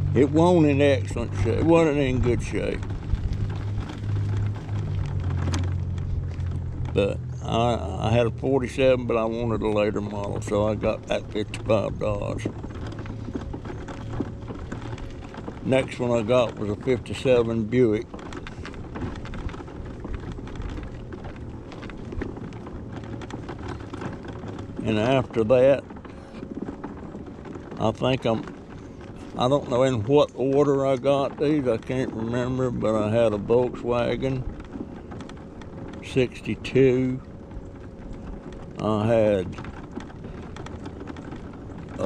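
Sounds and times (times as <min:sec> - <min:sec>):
low hum: 0:00.0 - 0:27.8
tyres crackling on asphalt: 0:00.0 - 0:42.0.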